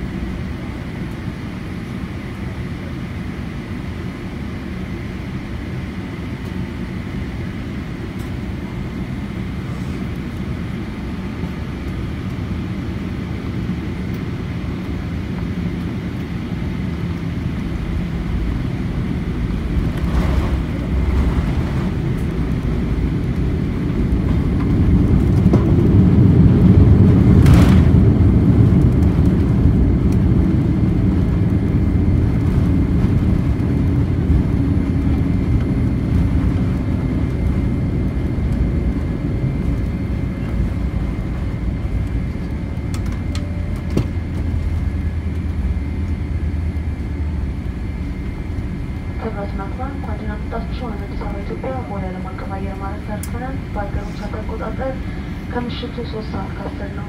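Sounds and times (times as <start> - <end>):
deep jet cabin rumble: 0.0 - 57.0.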